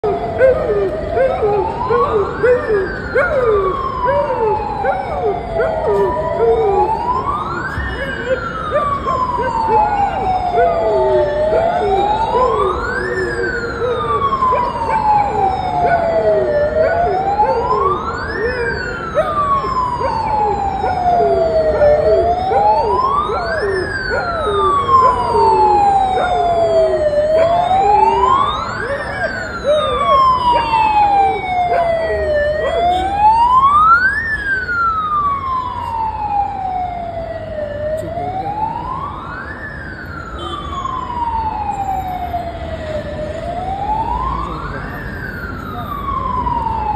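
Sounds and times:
wailing siren: 0:00.0 - 0:46.9.

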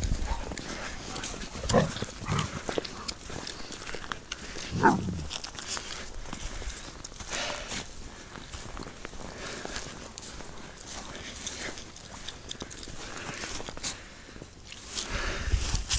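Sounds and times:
footsteps crunching in snow: 0:00.0 - 0:15.9
dog vocalizing: 0:04.7 - 0:05.3.

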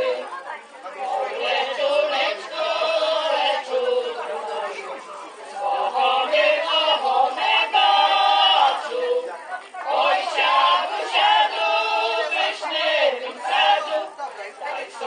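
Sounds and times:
women singing a cappella: 0:00.0 - 0:15.0.

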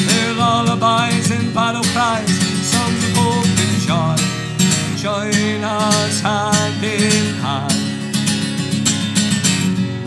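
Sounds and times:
man singing: 0:00.0 - 0:08.0
acoustic guitar strumming: 0:00.0 - 0:10.0.

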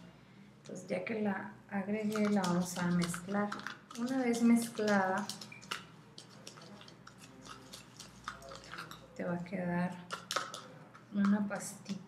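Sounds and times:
thick paste stirred in plastic container: 0:01.9 - 0:12.0.

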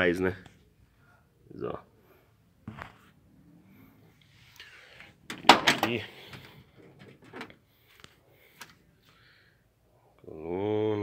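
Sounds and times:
metal door clunks and rattles: 0:05.3 - 0:07.6.

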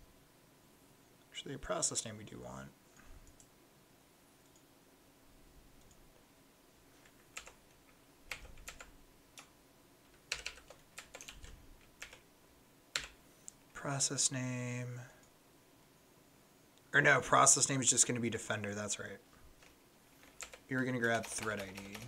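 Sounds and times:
typing on computer keyboard: 0:07.0 - 0:07.6, 0:08.3 - 0:09.5, 0:10.1 - 0:12.2, 0:12.9 - 0:13.2, 0:19.6 - 0:22.0.

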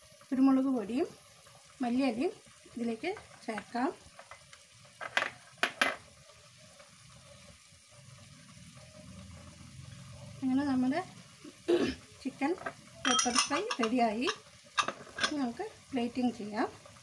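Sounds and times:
metal cookware clinking: 0:12.5 - 0:15.6.

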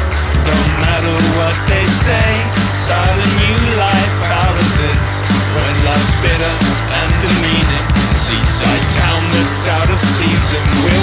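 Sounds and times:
bass guitar: 0:00.0 - 0:11.0
drums with cymbal hits: 0:00.0 - 0:11.0
melodic guitar line: 0:00.0 - 0:11.0.

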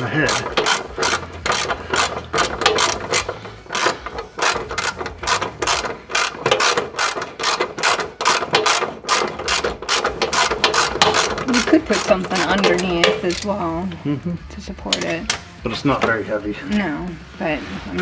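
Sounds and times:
ratchet wrench clicking: 0:00.0 - 0:13.6.

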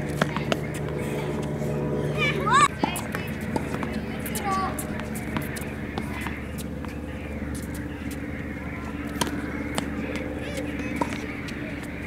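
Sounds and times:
tennis balls bouncing on court: 0:00.0 - 0:12.0
tennis balls struck by rackets: 0:00.0 - 0:12.0
child shouting: 0:02.2 - 0:02.7.

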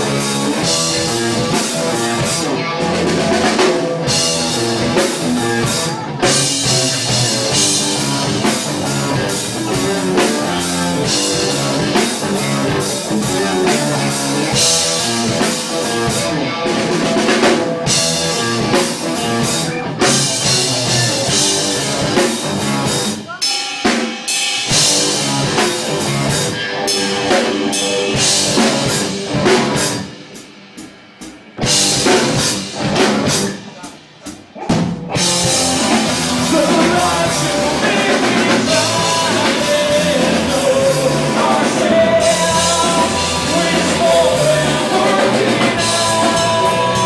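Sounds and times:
drum kit: 0:00.0 - 0:47.0
live rock band playing: 0:00.0 - 0:47.0.

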